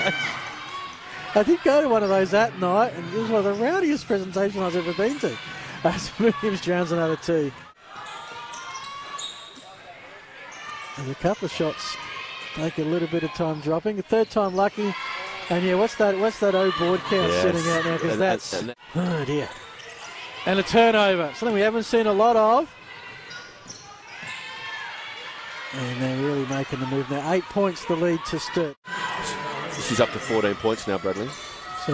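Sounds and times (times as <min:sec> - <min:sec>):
sneaker squeaks: 0:08.0 - 0:09.8, 0:10.4 - 0:11.6, 0:13.3 - 0:14.8, 0:19.4 - 0:20.2, 0:22.9 - 0:25.0, 0:29.3 - 0:31.9.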